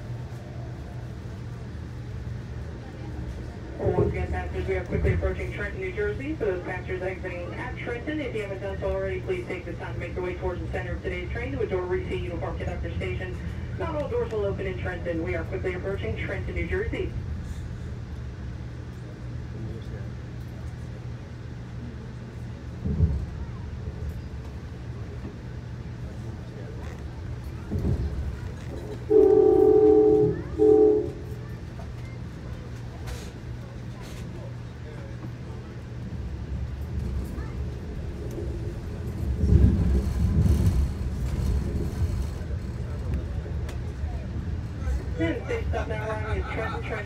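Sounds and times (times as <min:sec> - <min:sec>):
train rumbling on rails: 0:00.0 - 0:47.0
thumps of train: 0:22.8 - 0:24.6, 0:26.8 - 0:33.4, 0:36.8 - 0:45.2
train horn blasts: 0:29.0 - 0:31.4.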